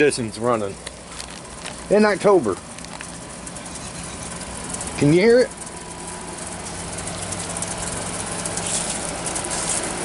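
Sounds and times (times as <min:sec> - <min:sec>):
air conditioner humming: 0:00.0 - 0:10.0
fan noise rushing: 0:00.0 - 0:10.0.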